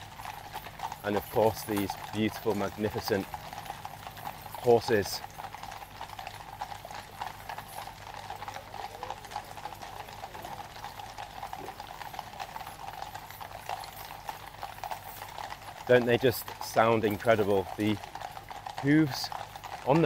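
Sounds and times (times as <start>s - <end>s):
hooves clip-clopping on road: 0.0s - 20.0s.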